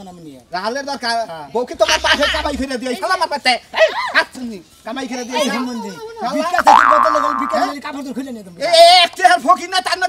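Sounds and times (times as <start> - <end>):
man talking: 1.7 - 3.2, 6.4 - 8.0
comic boing sound effect: 6.6 - 7.7.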